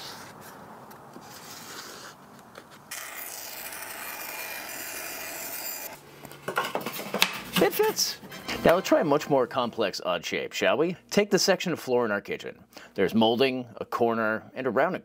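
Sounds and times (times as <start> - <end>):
bench saw cutting plywood: 2.9 - 6.0.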